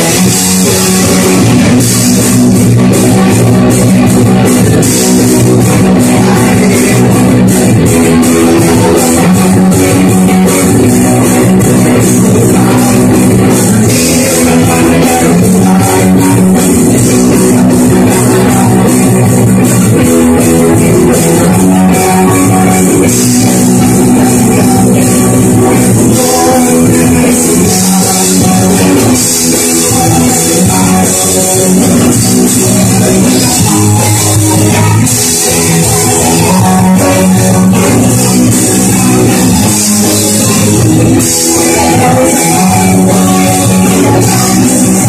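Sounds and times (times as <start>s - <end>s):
bass guitar: 0.0s - 45.0s
drum kit: 0.0s - 45.0s
electric guitars: 0.0s - 45.0s
live rock band playing: 0.0s - 45.0s.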